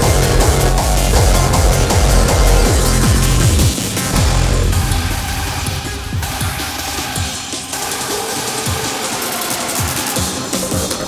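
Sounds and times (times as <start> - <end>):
harsh noisy layer: 0.0 - 10.2
heavy kick drums: 0.0 - 10.8
hardcore electronic music: 0.0 - 11.0.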